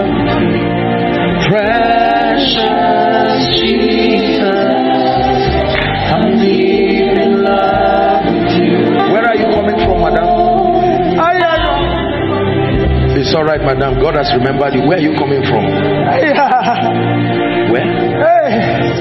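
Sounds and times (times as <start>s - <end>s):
gospel choir singing: 0.0s - 19.0s.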